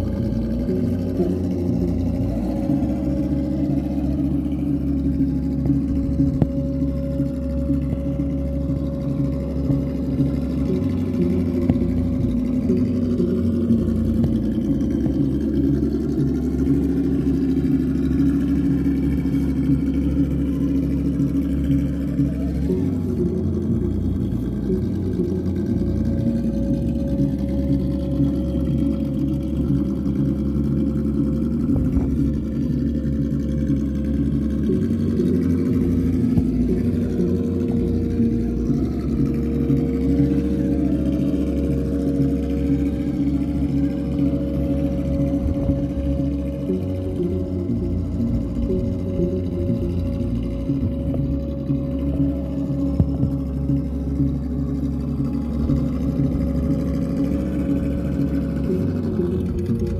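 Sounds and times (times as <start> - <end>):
simulated truck engine sound: 0.0 - 59.9.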